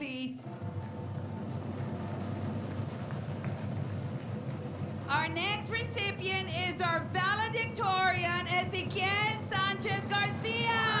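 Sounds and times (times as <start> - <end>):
drum roll: 0.4 - 11.0.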